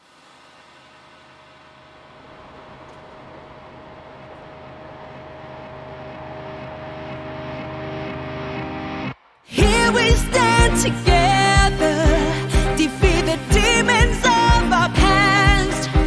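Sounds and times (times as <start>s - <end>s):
droning held tone over low hum: 0.0s - 12.3s.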